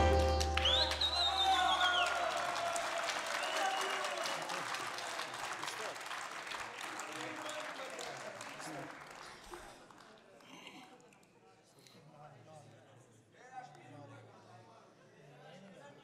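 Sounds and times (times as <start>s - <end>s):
audience applauding: 0.0s - 10.2s.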